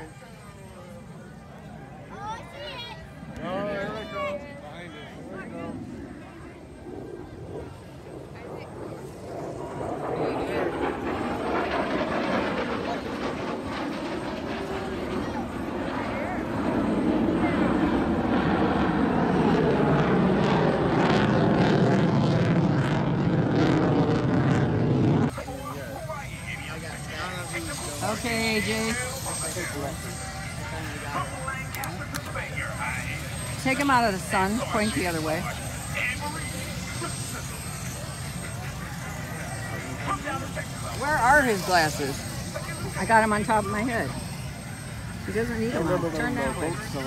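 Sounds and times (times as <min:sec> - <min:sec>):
aircraft engine flying past: 0:00.0 - 0:47.0.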